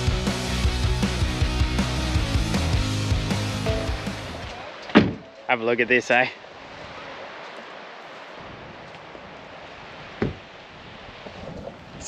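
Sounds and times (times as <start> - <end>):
gentle surf on beach: 3.6 - 12.0
brief thump: 4.9 - 5.3, 10.2 - 10.4.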